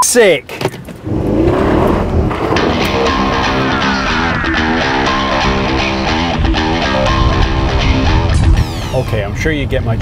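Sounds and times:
car engine revving: 1.0 - 8.9
electric guitar music: 2.4 - 9.1.

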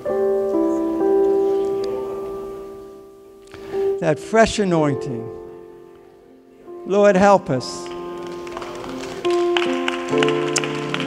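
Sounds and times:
held keyboard chords: 0.0 - 11.0.

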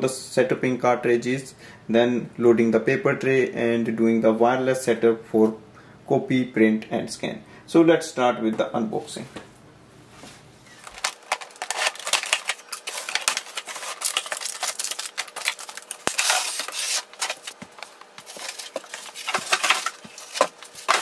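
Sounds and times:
cardboard scraping and rustling: 10.2 - 21.0.

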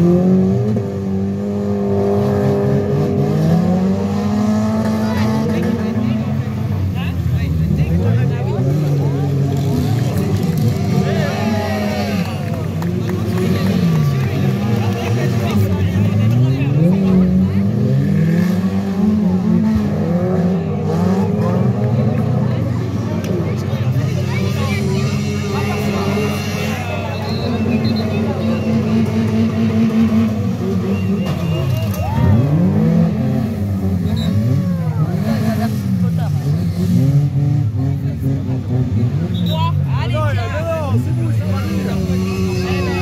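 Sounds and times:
car engines revving: 0.0 - 43.0.

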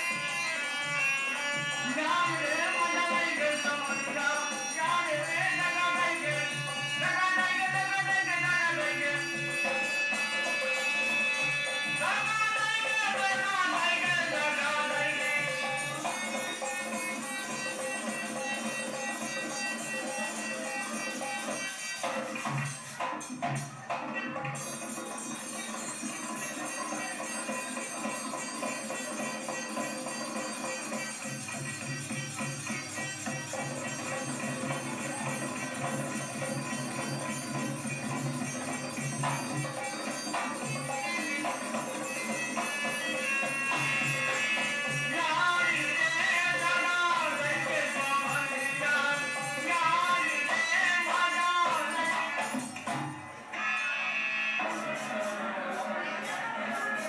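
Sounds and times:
harmonium playing: 0.0 - 22.3, 27.8 - 52.2
dholak drumming: 0.0 - 53.8.

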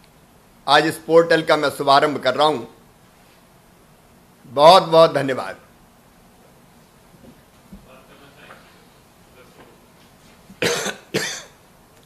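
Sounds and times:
man coughing: 10.6 - 11.6.

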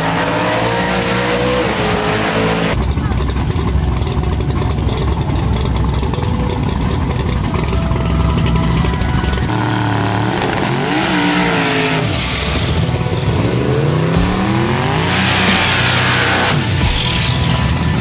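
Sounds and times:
deep heavy engine sound: 0.0 - 18.0
race car engines running: 0.0 - 18.0.

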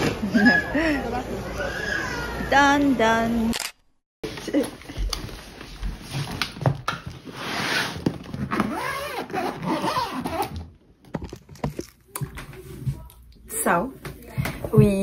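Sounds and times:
suitcase zipper rasp: 7.3 - 10.6.

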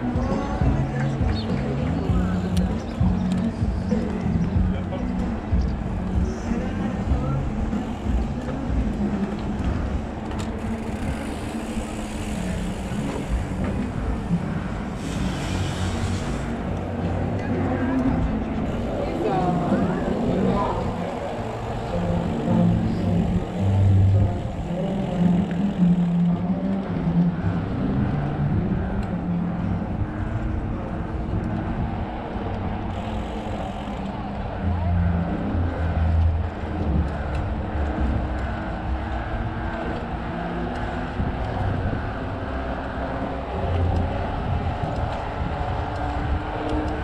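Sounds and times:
tyre noise on road: 0.0 - 47.0
wind rumbling on microphone: 0.0 - 47.0.

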